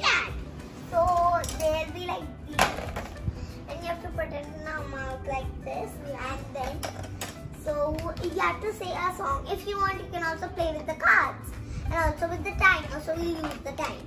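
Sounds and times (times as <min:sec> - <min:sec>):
young girls talking: 0:00.0 - 0:02.8, 0:03.7 - 0:06.8, 0:07.6 - 0:14.0.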